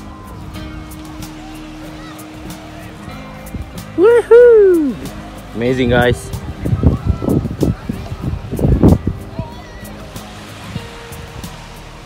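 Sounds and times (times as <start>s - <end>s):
music with light beat: 0.0s - 12.0s
surf: 0.0s - 12.0s.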